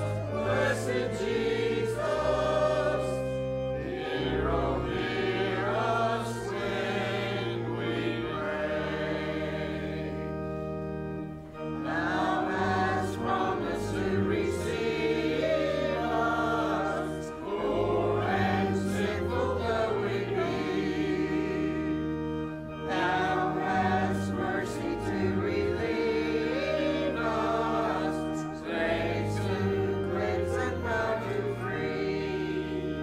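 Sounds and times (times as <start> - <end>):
choir singing a hymn: 0.0 - 33.0
organ: 0.0 - 33.0.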